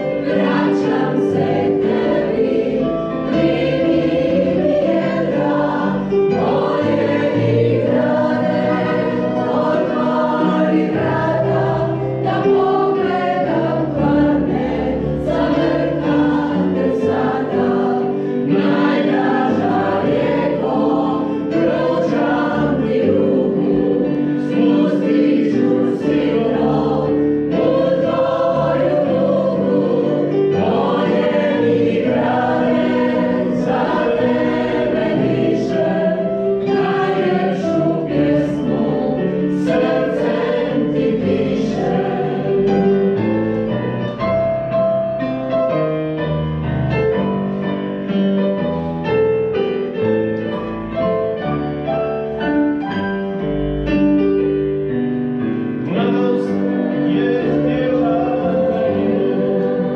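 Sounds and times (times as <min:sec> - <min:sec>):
choir singing held chords: 0:00.0 - 0:43.6, 0:55.4 - 0:59.9.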